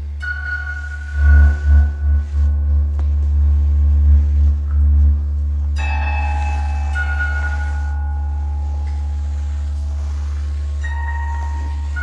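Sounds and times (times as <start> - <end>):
bell-like ringing high tones: 0.2 - 2.7, 5.8 - 9.8.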